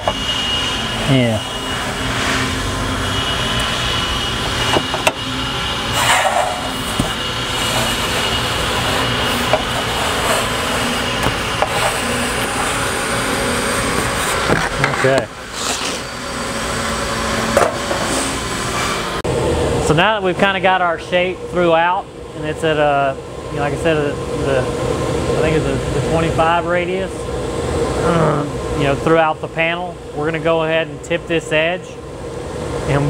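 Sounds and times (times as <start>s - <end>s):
ventilation hum: 0.0s - 33.0s.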